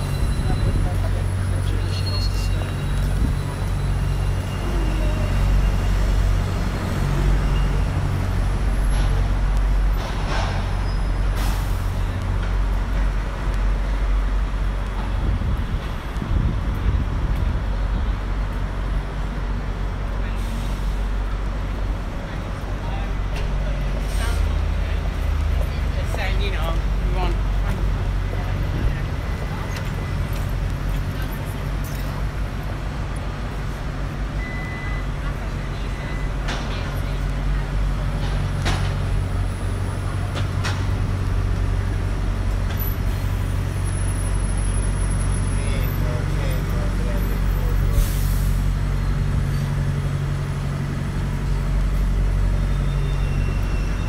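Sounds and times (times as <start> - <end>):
bus engines rumbling: 0.0 - 54.0.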